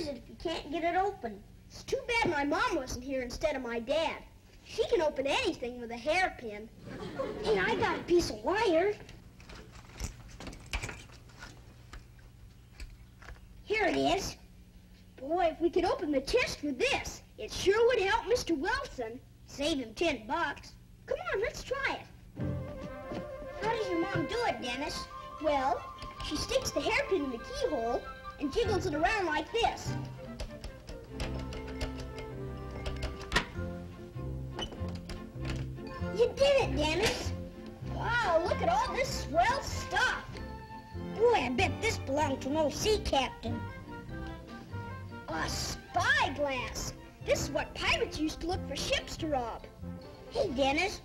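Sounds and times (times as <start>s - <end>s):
light comic background music: 7.4s - 9.0s, 15.2s - 51.0s
children's footsteps: 22.4s - 33.6s
metallic clicking of wire in lock: 30.3s - 33.6s
sharp click of lock giving: 30.4s - 33.6s.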